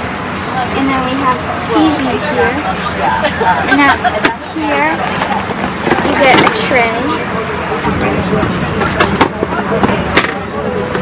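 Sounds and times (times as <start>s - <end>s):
airliner cabin hum: 0.0s - 11.0s
people talking: 0.4s - 11.0s.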